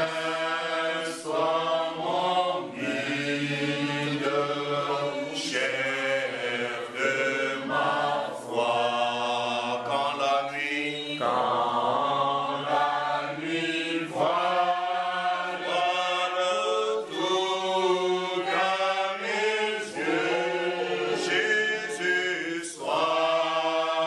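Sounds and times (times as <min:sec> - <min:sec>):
man singing a hymn: 0:08.6 - 0:11.4, 0:21.2 - 0:24.0.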